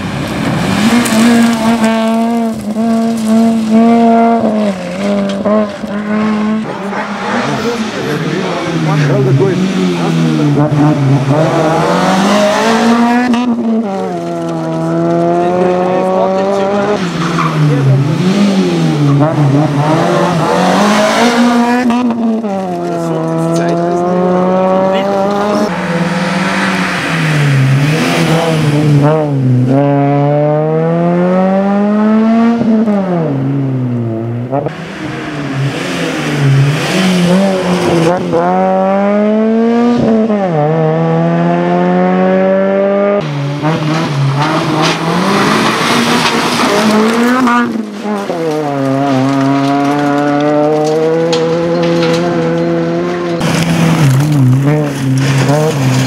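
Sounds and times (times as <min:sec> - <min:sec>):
rally car engines revving: 0:00.0 - 0:56.0.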